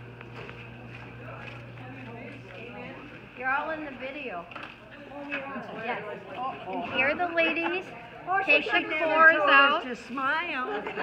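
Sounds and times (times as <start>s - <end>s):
steady low hum: 0.0s - 5.3s
indistinct background chatter: 0.4s - 11.0s.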